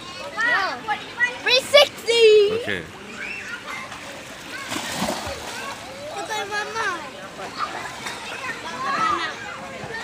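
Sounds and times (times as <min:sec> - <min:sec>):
splash into a pool: 0:03.7 - 0:06.0.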